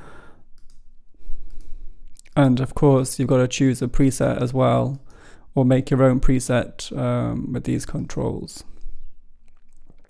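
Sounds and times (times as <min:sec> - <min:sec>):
computer mouse clicks: 0:00.6 - 0:00.8, 0:01.5 - 0:01.7.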